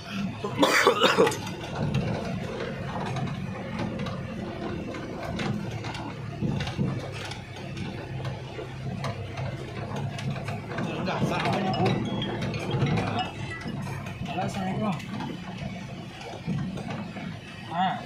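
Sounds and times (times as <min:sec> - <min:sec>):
truck cab rattling: 0:00.0 - 0:18.0
truck engine drone: 0:00.0 - 0:18.0
clicks and knocks: 0:00.9 - 0:17.7.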